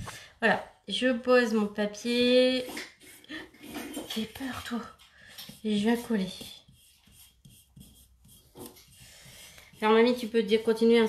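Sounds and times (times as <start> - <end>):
hands rubbing paper: 5.5 - 11.0.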